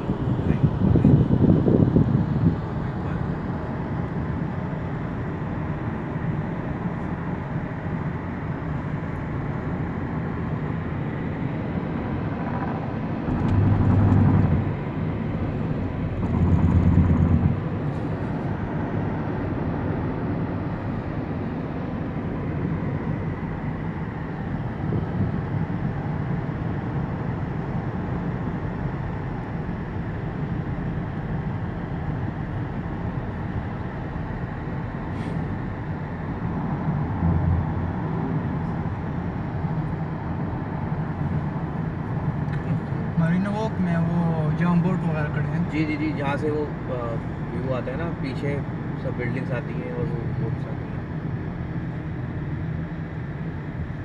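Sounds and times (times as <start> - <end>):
car road noise inside cabin: 0.0 - 54.0
low rumbles: 11.3 - 18.8, 34.6 - 41.5.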